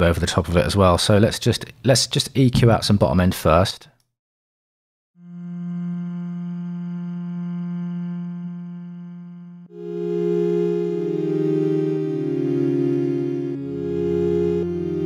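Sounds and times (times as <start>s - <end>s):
held synth chord: 5.2s - 15.0s.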